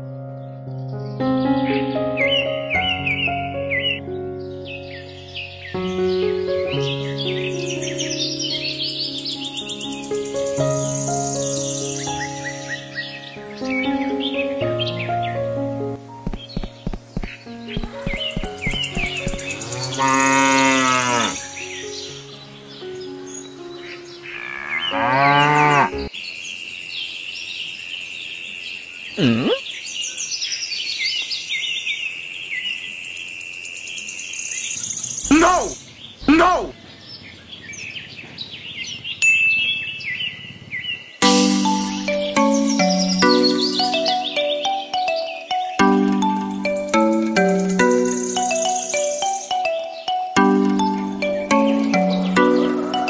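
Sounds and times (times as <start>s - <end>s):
light background music: 0.2s - 26.1s, 41.2s - 53.0s
birds chirping: 0.4s - 15.5s, 16.1s - 53.0s
cow mooing: 19.4s - 21.5s, 24.3s - 26.1s.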